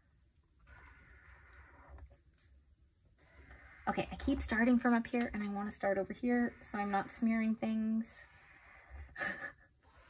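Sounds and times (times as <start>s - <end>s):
pen scratching on paper: 0.6s - 2.2s, 3.2s - 9.2s.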